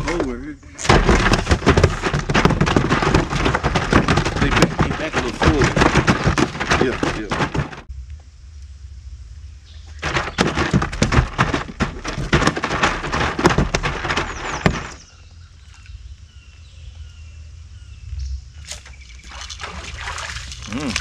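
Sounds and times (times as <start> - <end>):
rapid crackling clicks and knocks: 0.0 - 7.9, 10.0 - 15.1
fish splashing at the surface: 19.2 - 21.0.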